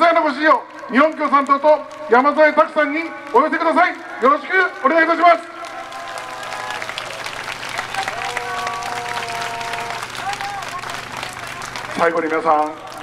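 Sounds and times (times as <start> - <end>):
crowd applauding: 0.0 - 13.0.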